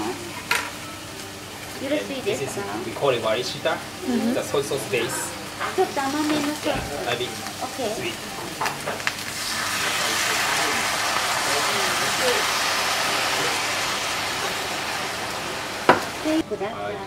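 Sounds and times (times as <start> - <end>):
pan sizzling: 0.0 - 16.5.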